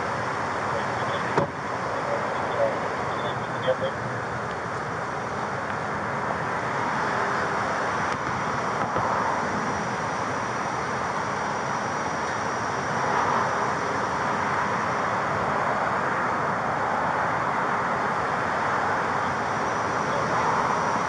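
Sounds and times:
traffic noise: 0.0 - 21.0.

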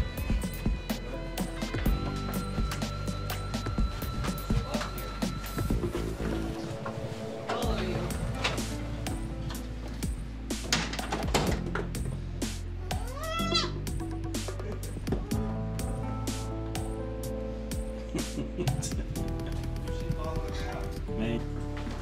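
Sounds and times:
baby goat bleating: 12.9 - 13.8.

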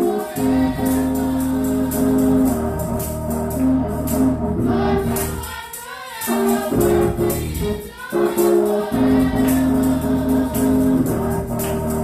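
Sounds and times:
gospel choir singing: 0.0 - 12.0
organ chords: 0.0 - 12.0
hand clapping: 5.1 - 7.1, 9.3 - 12.0.

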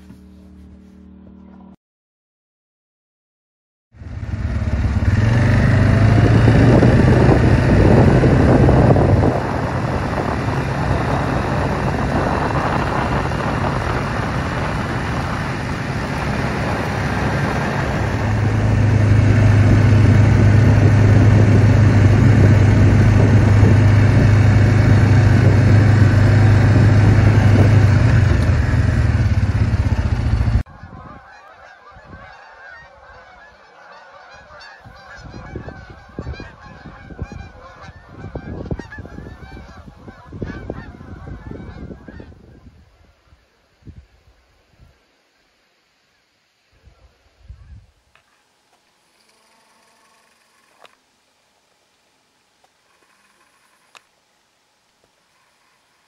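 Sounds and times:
low engine drone: 0.0 - 1.8, 4.0 - 30.7
vehicle road noise: 4.0 - 30.7
geese honking: 30.6 - 43.4, 46.9 - 48.5.

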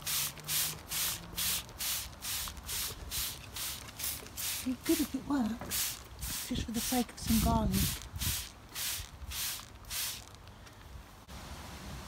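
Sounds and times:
spray bottle hissing sprays: 0.0 - 10.4.

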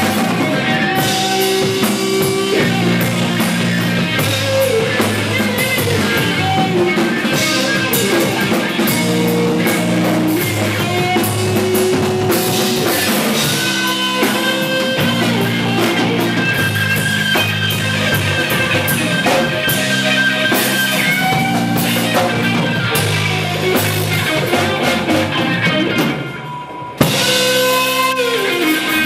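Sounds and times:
drum kit with cymbal hits: 0.0 - 29.0
electric bass line: 0.0 - 29.0
electric guitar sustained notes: 0.0 - 29.0.

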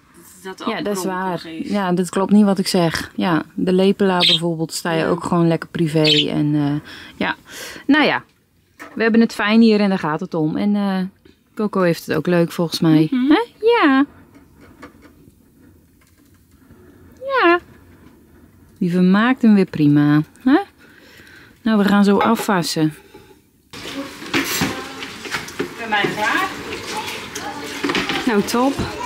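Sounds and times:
bird beak nibbling and tapping: 4.2 - 4.4, 6.0 - 6.3
dishes rinsed and scrubbed: 22.0 - 29.0
water running from tap: 23.7 - 29.0.

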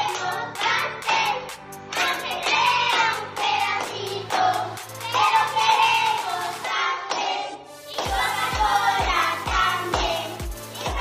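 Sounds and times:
music with steady beat: 0.0 - 6.7, 7.6 - 11.0
children singing: 0.0 - 11.0.

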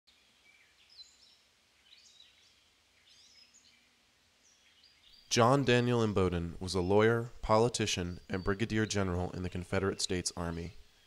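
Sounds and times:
faint bird chirps and whistles: 0.1 - 5.4.

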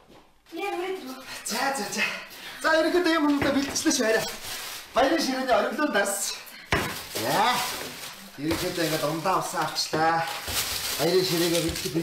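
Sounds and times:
plastic bag rustling: 0.5 - 12.0
man talking: 1.5 - 6.5, 7.1 - 12.0.

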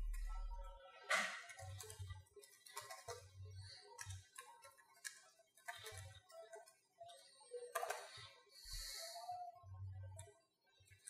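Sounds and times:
computer keyboard typing: 1.5 - 3.2.

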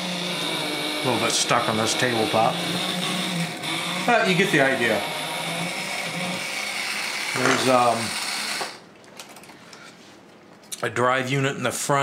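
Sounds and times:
toy electric motor running: 0.0 - 8.8.

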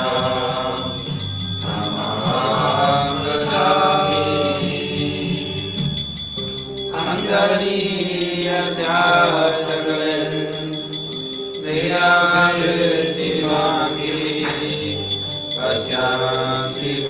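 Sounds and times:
mantra chanting: 0.0 - 5.9, 7.0 - 11.0, 11.7 - 15.0, 15.6 - 17.0
instrumental accompaniment: 0.0 - 17.0
quick percussion beat: 0.0 - 17.0.

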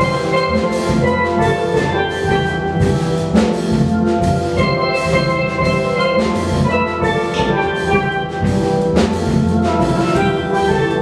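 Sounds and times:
drums: 0.0 - 11.0
steel pans playing: 0.0 - 11.0.

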